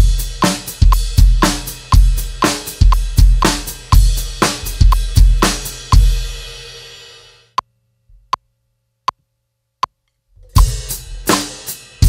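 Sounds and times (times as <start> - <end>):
drum kit groove: 0.0 - 7.4, 10.4 - 12.0.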